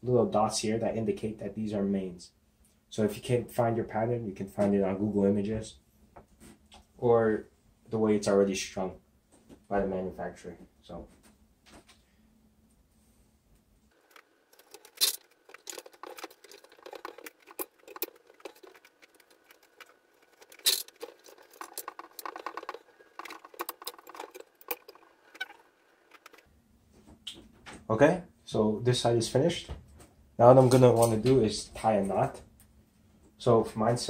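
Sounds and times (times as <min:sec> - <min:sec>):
string rustling and scraping: 0:13.9 - 0:27.2.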